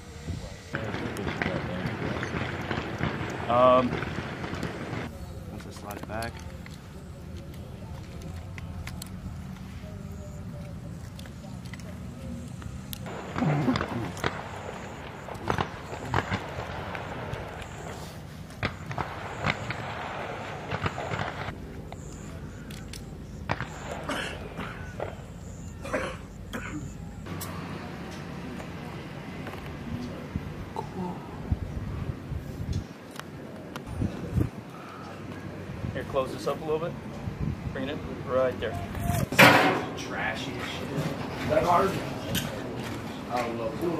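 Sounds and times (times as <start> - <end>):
steady low hum: 0.0 - 43.9
rifles clicking and knocking: 0.8 - 9.7.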